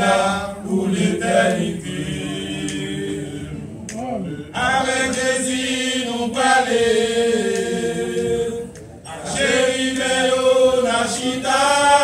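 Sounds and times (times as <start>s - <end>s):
men singing hymn a cappella: 0.0s - 3.7s, 4.3s - 12.0s.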